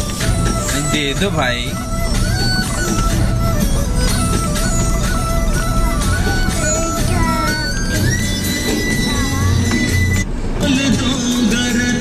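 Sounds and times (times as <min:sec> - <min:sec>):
engine and road rumble: 0:00.0 - 0:12.0
song on car radio: 0:00.0 - 0:12.0.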